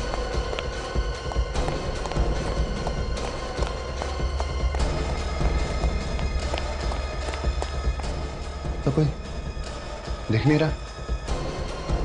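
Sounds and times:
hurried footsteps on stairs: 0:00.0 - 0:08.6
background music with low rumble: 0:00.0 - 0:12.0.

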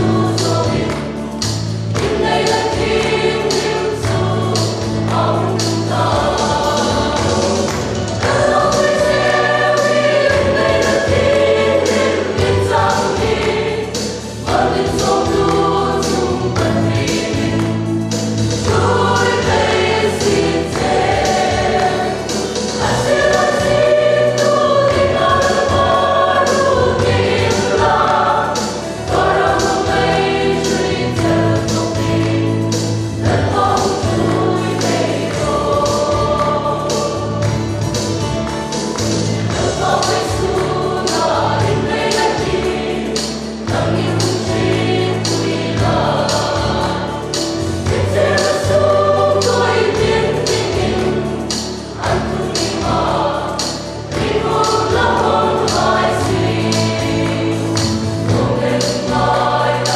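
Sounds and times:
choir singing a hymn: 0:00.0 - 0:59.9.

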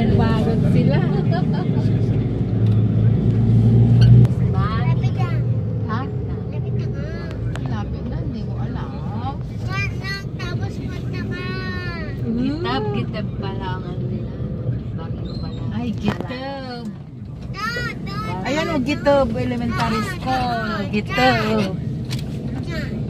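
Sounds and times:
motorcycle engines: 0:00.0 - 0:23.0
road noise: 0:00.0 - 0:23.0
truck passing: 0:00.0 - 0:23.0.

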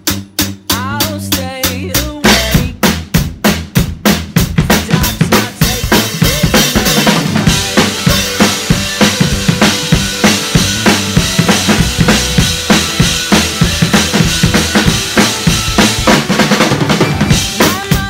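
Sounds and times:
backing track music: 0:00.0 - 0:18.0
drum kit kick and snare: 0:00.0 - 0:18.0.

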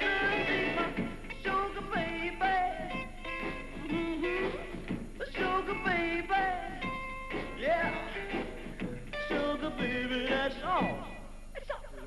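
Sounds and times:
man singing: 0:00.0 - 0:03.1, 0:03.8 - 0:06.9, 0:07.5 - 0:08.6, 0:09.2 - 0:12.0
rock and roll band with guitar: 0:00.0 - 0:11.2.

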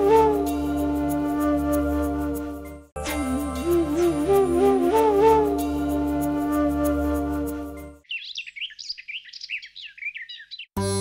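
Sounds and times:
background music: 0:00.0 - 0:08.0, 0:10.8 - 0:11.0
music with flute: 0:00.0 - 0:08.0
small birds chirping: 0:08.0 - 0:10.8.

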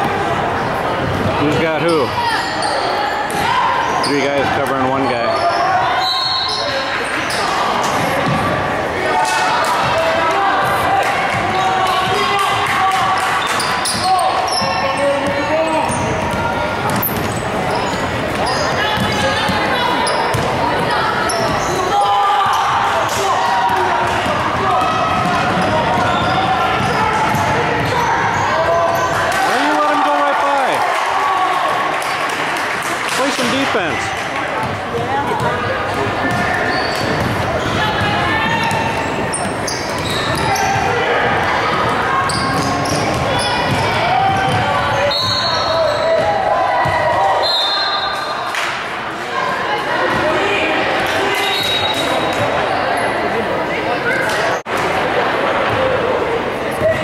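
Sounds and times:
basketball bouncing on wooden floor: 0:20.3 - 0:20.5, 0:43.0 - 0:44.7.

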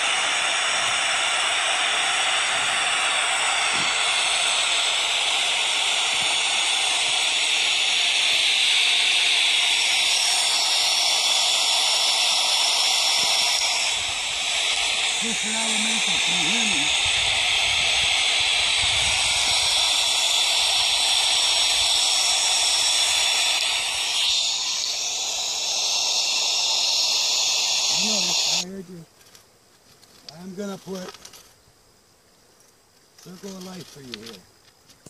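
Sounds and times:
white noise hiss from speaker: 0:00.0 - 0:35.0.

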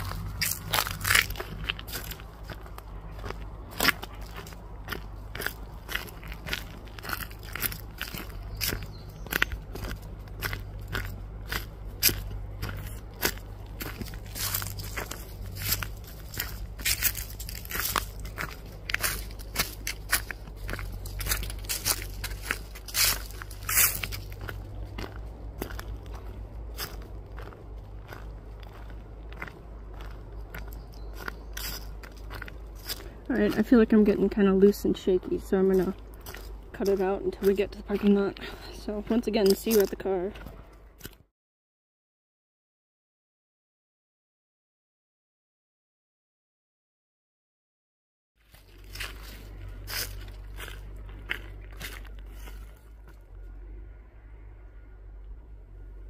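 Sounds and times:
footsteps crunching on dry leaves: 0:00.0 - 0:41.2, 0:48.4 - 0:53.6.

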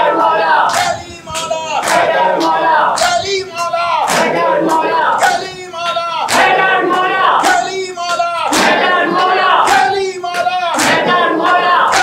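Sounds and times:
men chanting in unison: 0:00.0 - 0:12.0
hands slapping on chests: 0:06.3 - 0:06.7, 0:07.4 - 0:09.0, 0:09.6 - 0:11.1.

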